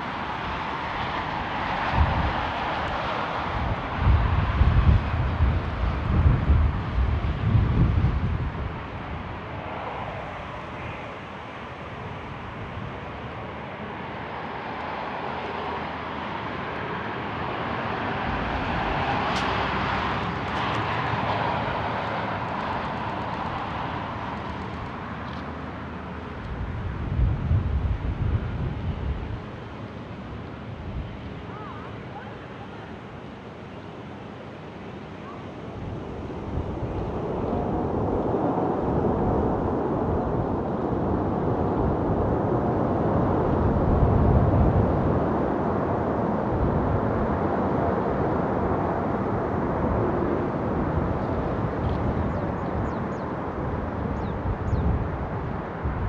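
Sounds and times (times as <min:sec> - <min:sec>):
jet engines taxiing: 0:00.0 - 0:56.0.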